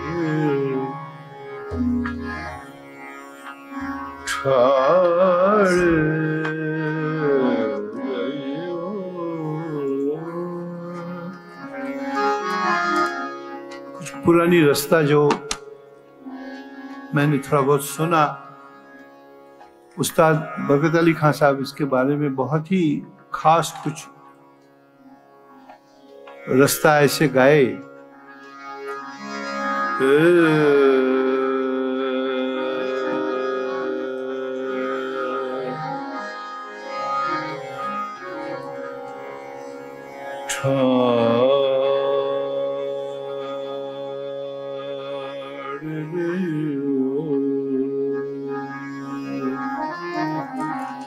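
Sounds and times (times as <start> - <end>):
man singing: 0.0 - 2.4, 4.3 - 11.7, 30.0 - 36.3, 40.5 - 51.0
harmonium held reed notes: 0.0 - 51.0
tanpura drone: 0.0 - 51.0.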